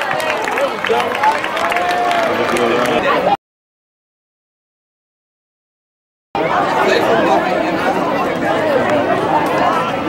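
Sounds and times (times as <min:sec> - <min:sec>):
spectators chattering: 0:00.0 - 0:03.4, 0:06.4 - 0:10.0.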